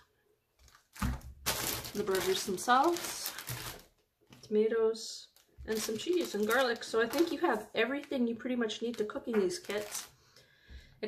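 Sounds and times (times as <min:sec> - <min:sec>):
plastic bag crinkling: 0:00.6 - 0:04.5, 0:05.2 - 0:10.2.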